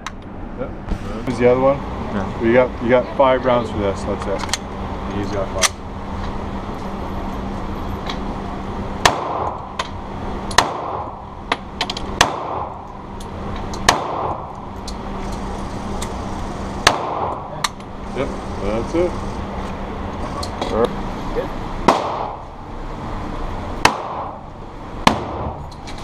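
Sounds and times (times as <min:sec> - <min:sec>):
pistol shots with echo: 0:09.0 - 0:09.6, 0:10.6 - 0:11.1, 0:13.8 - 0:14.4, 0:21.8 - 0:22.4.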